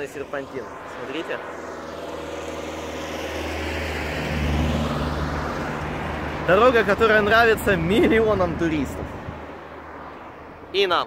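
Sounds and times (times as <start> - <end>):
car passing by: 0.0 - 10.8.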